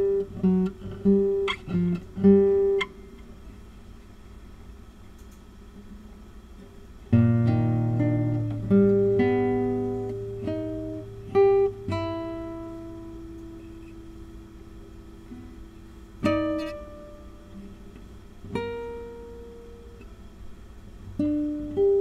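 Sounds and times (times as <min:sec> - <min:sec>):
classical guitar playing: 0:00.0 - 0:03.2, 0:07.1 - 0:20.2, 0:21.1 - 0:22.0.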